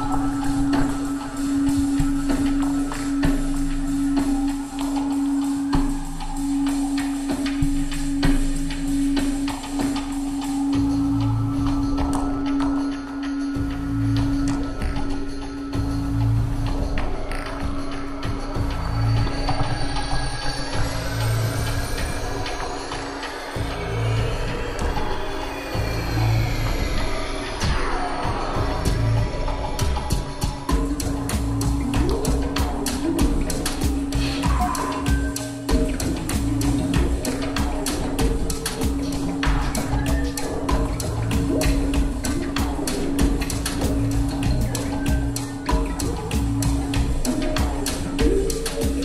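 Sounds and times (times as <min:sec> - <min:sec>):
low pulsing bass: 0:00.0 - 0:22.8, 0:23.6 - 0:49.0
electronic drone: 0:00.0 - 0:49.0
fast dense clicking rhythm: 0:29.8 - 0:49.0.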